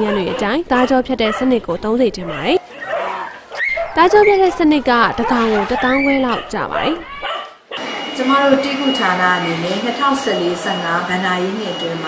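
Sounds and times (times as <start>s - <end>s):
dogs whining and yipping: 2.2s - 7.9s
person narrating: 4.0s - 7.1s.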